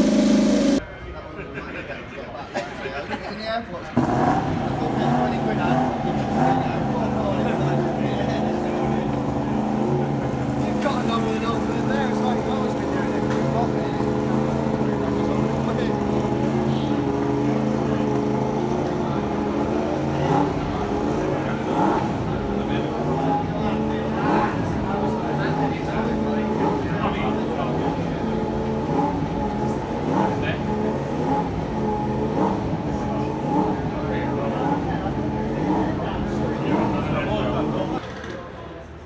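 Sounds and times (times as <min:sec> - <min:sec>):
people talking: 0:00.0 - 0:39.0.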